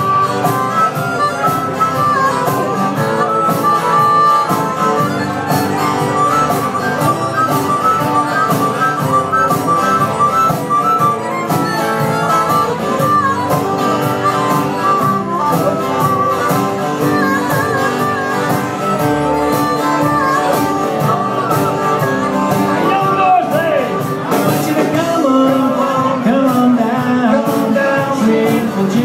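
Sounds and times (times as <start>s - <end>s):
harmonica melody: 0.0s - 29.0s
strummed acoustic guitars: 0.0s - 29.0s.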